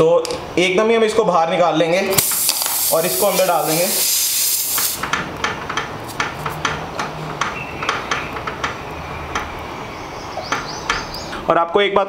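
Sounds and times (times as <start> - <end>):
sharp clicks of repair tool: 2.2 - 2.9.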